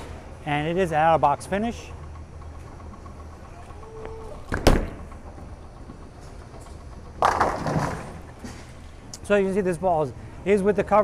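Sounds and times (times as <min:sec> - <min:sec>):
bowling alley hum: 0:00.0 - 0:11.0
bowling pins clattering: 0:04.4 - 0:08.8.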